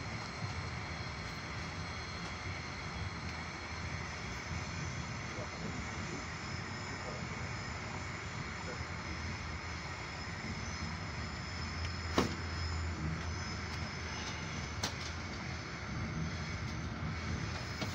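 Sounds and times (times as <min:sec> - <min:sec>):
train coach running on rails: 0:00.0 - 0:17.9.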